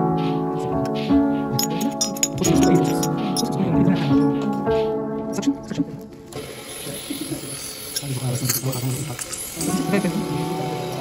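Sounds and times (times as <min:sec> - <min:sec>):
background music with held notes: 0:00.0 - 0:07.3, 0:09.6 - 0:11.0
suction tip hissing: 0:06.3 - 0:11.0.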